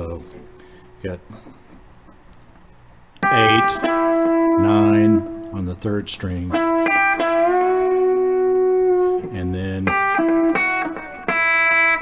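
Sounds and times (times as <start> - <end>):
electric guitar notes: 0.0 - 2.2, 3.2 - 12.0.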